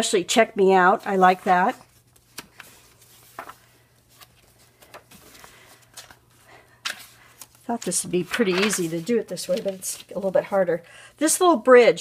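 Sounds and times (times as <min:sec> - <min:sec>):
magazine pages turning: 0:01.2 - 0:10.6.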